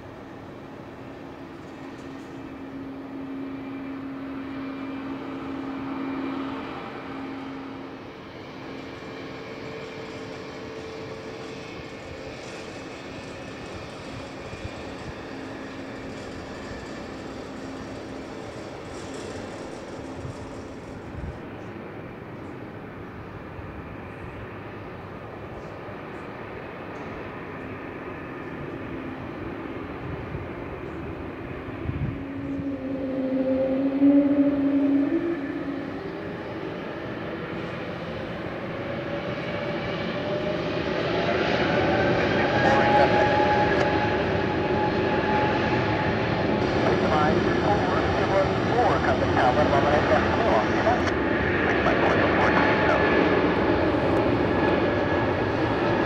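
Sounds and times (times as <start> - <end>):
jet engines humming: 0.0 - 56.0.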